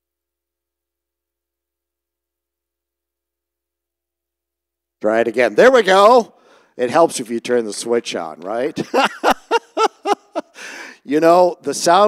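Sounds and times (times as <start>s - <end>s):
breathy exhale: 6.4s - 6.8s, 10.5s - 11.0s
man chuckling: 8.7s - 10.8s.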